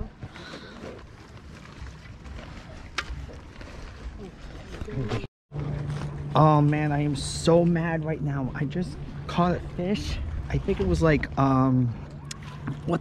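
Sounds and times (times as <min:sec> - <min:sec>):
lakeside ambience: 0:00.0 - 0:13.0.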